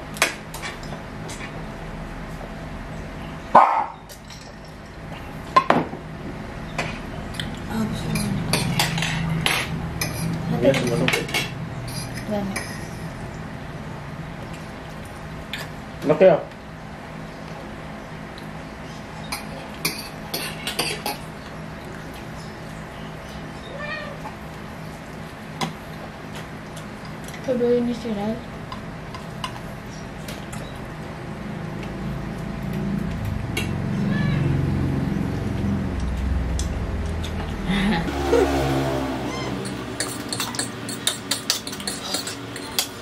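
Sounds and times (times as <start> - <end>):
loud bark-like sound: 3.5 - 4.0
cat meowing: 23.7 - 24.2, 34.0 - 34.6, 39.3 - 39.7.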